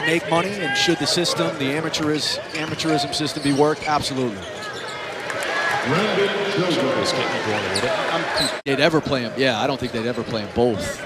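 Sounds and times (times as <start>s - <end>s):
men commentating: 0.0s - 4.5s, 5.8s - 11.0s
basketball game arena sound: 0.0s - 11.0s.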